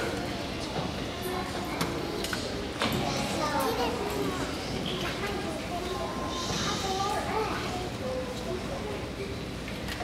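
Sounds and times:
young children chattering: 0.0s - 9.7s.

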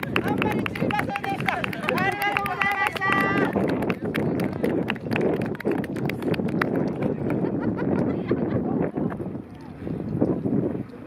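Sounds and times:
voices: 0.0s - 5.8s
hand clapping: 0.0s - 7.4s.

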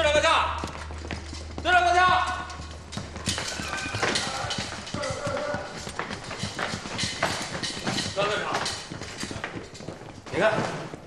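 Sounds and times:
boots running on wooden floor: 0.0s - 11.0s
man shouting: 3.6s - 5.8s.

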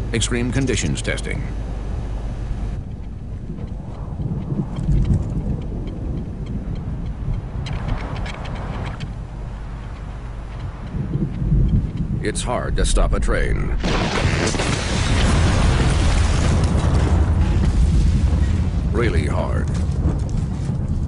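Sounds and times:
gust of wind: 1.6s - 21.0s
deep rumble of thunder: 2.6s - 21.0s.

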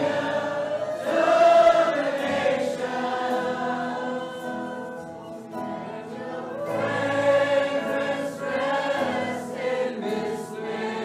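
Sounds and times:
choir singing slow worship song: 0.0s - 11.0s.

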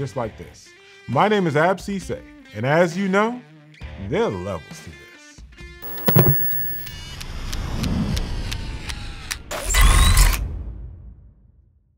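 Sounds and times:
quick clicks: 5.8s - 6.9s.

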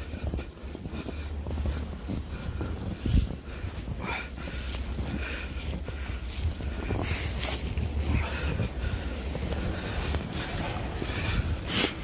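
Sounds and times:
footsteps crunching through snow: 0.0s - 12.0s
wind buffeting microphone: 0.0s - 12.0s.

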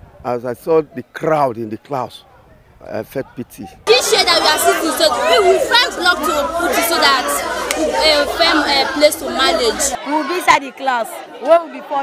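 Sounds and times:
children chattering and laughing: 1.9s - 12.0s.

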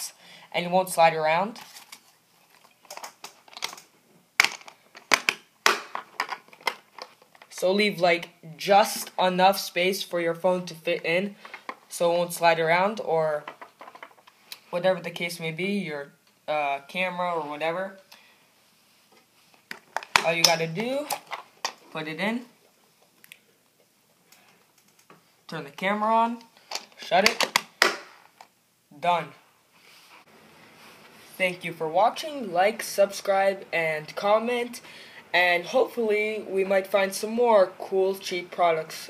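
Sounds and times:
plastic box clicks: 4.4s - 7.2s.

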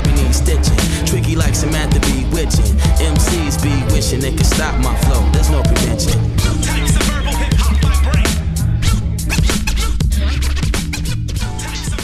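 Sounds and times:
heavy bass hip hop beat: 0.0s - 12.0s
turntable scratching: 1.5s - 7.8s.

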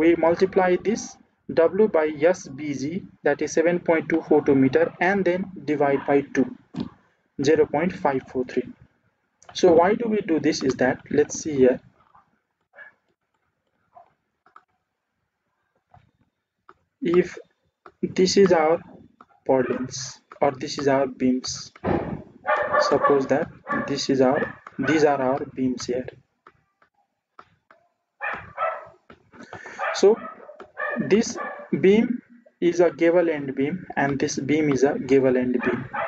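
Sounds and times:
animal calling: 22.5s - 25.2s, 29.7s - 31.8s.

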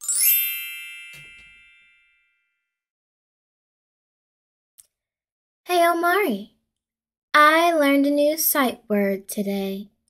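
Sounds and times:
bell-like chime ringing: 0.0s - 2.8s.

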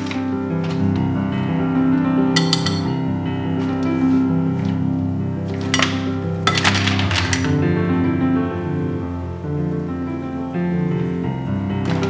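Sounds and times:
background music: 0.0s - 12.0s
mussels clattering in a metal pan: 2.4s - 3.0s, 5.5s - 7.6s.

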